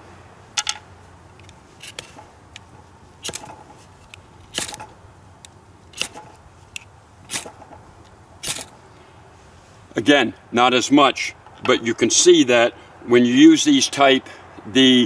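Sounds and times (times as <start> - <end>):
striker scraping ferro rod: 1.8 - 4.9.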